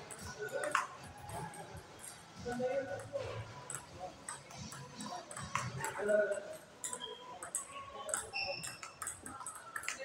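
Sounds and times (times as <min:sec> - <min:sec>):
table tennis ball clicking: 0:00.1 - 0:00.9, 0:02.0 - 0:10.0.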